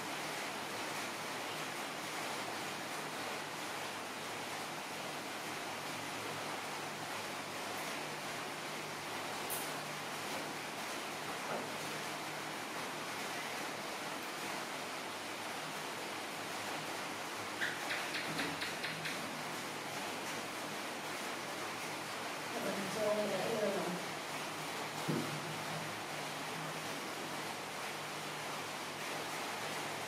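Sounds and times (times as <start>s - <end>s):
background hiss: 0.0s - 30.0s.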